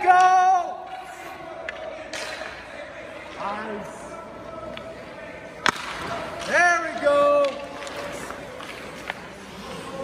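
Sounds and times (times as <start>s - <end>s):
hockey stick striking puck: 5.6s - 9.3s.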